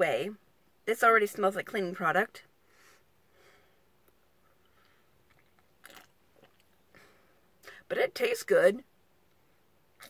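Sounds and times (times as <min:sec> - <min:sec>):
small mouth sounds: 0:04.4 - 0:06.8
sipping and swallowing: 0:04.6 - 0:06.8.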